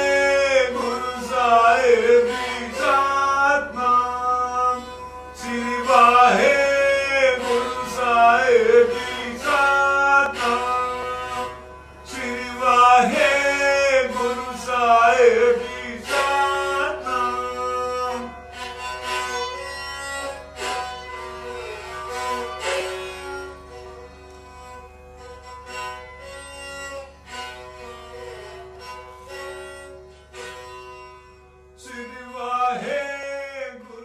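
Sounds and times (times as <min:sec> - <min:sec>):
person singing: 0:00.0 - 0:11.5
plucked strings over a drone: 0:00.0 - 0:33.0.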